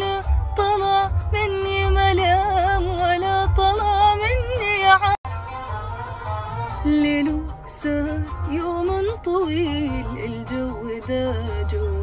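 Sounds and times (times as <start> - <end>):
woman singing melismatic song: 0.0 - 5.2, 6.8 - 12.0
bass-heavy backing track: 0.0 - 12.0.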